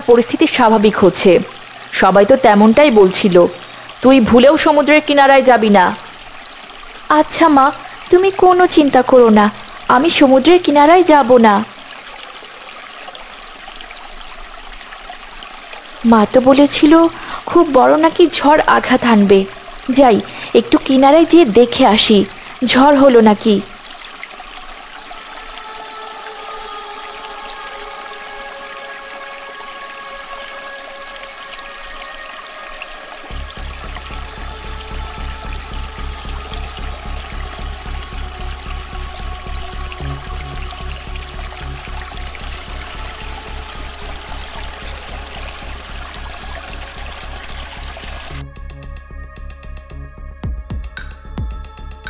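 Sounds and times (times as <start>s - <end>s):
water bubbling: 0.0s - 48.4s
sustained synth chords: 25.4s - 49.4s
low pulsing beat: 33.3s - 52.0s.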